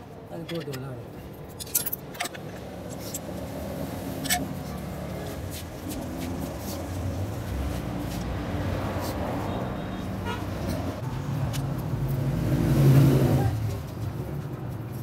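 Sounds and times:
street traffic noise: 0.0 - 15.0
vehicle engine passing by: 11.1 - 14.1.

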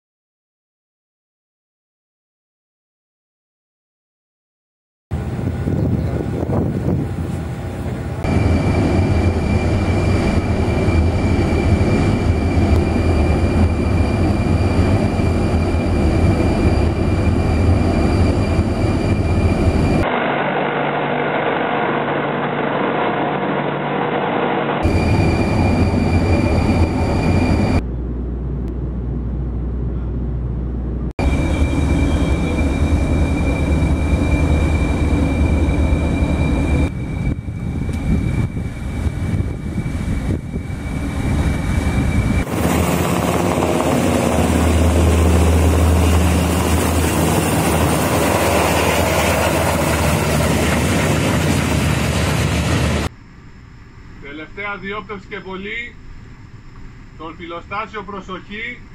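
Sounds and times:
hovercraft running: 5.1 - 53.1
helicopter rotor and turbine: 5.1 - 58.9
ship engine and wind noise: 5.1 - 58.9.

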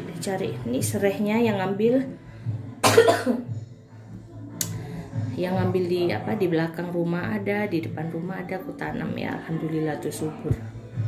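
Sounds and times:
person coughing: 2.8 - 3.5.

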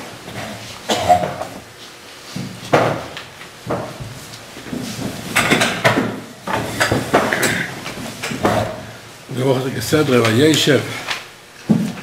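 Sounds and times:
man coughing: 0.9 - 1.4.

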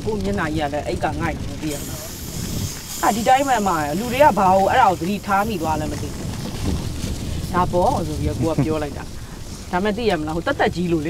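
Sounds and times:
person talking: 0.0 - 2.1, 3.0 - 6.2, 7.5 - 9.1
meat sizzling on grill: 1.6 - 10.0.

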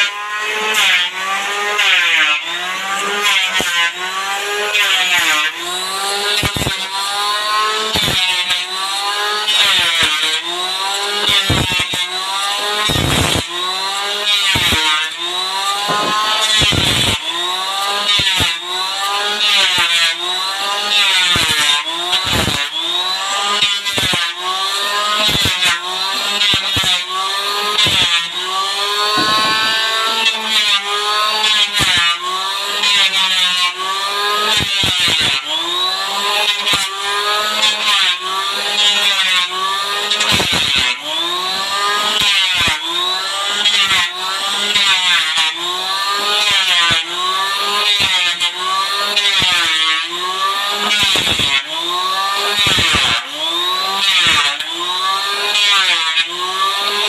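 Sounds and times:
electric hand planer shaving wood: 0.0 - 57.0.

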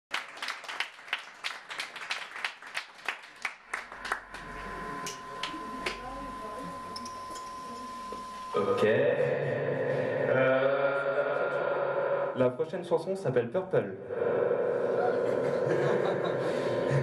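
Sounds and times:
audience hand clapping: 0.1 - 6.1
high electronic tone: 3.8 - 10.4
quiet voices: 14.1 - 17.0.

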